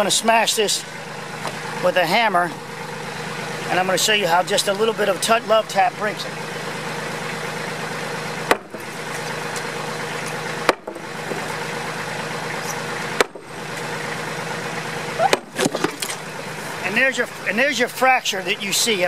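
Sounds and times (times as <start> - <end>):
diesel engine idling: 0.0 - 19.0.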